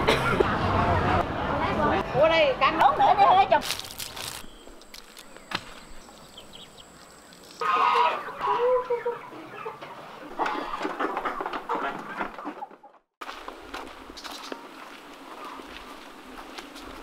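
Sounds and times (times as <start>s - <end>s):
chickens clucking: 6.0s - 13.0s.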